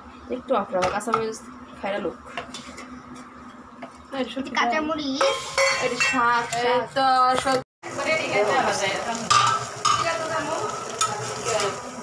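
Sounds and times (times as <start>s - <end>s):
greens sizzling in a pan: 7.8s - 12.0s.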